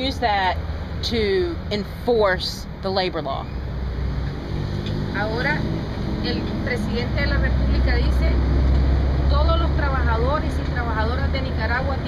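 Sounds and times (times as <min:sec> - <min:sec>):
passing vehicle engine rumble: 0:00.0 - 0:12.0.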